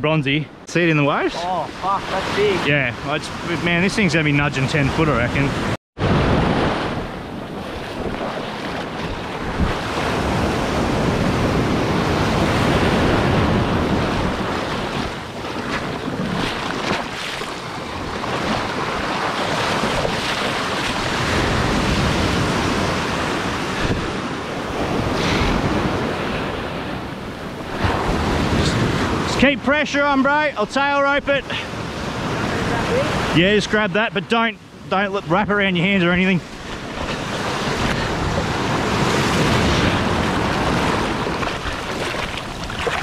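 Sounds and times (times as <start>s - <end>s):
surf breaking: 1.6s - 29.3s, 35.2s - 43.0s
wind buffeting microphone: 4.9s - 29.3s, 36.4s - 43.0s.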